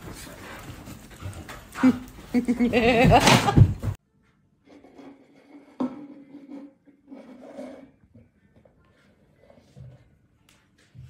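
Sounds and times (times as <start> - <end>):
person laughing: 1.8 - 3.9.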